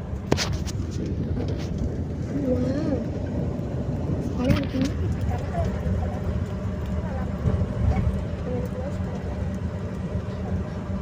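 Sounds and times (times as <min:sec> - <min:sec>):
moving bus rumble: 0:00.0 - 0:11.0.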